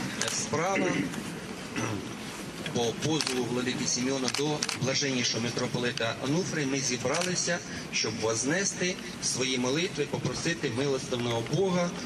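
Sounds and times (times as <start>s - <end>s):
man speaking into microphone: 0.0s - 1.2s, 2.7s - 12.0s
crowd background noise: 0.0s - 12.0s.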